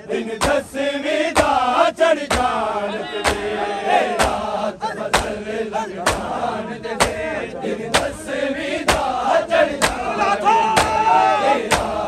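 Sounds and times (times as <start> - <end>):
crowd of men chanting: 0.0 - 12.0
collective chest slaps: 0.4 - 0.7, 1.4 - 1.6, 2.3 - 2.6, 3.3 - 3.5, 4.2 - 4.4, 5.1 - 5.4, 6.0 - 6.4, 8.0 - 8.2, 8.9 - 9.2, 9.8 - 10.0, 11.7 - 12.0.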